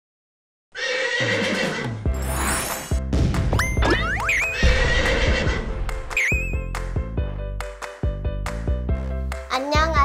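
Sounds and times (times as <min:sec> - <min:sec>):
horse whinny: 0:00.7 - 0:02.0, 0:04.4 - 0:05.6
cartoon intro music: 0:01.6 - 0:07.6.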